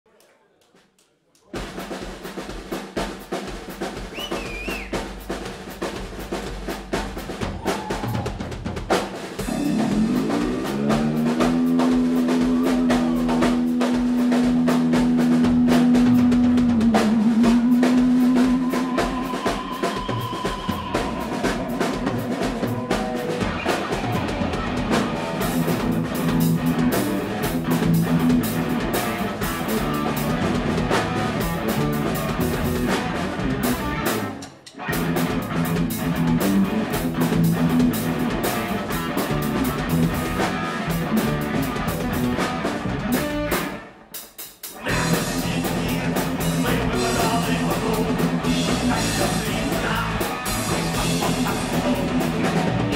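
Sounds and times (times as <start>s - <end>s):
drum kit: 1.4s - 52.9s
bass guitar: 3.6s - 44.1s, 44.7s - 52.9s
electric guitar: 9.3s - 44.1s, 44.7s - 52.9s.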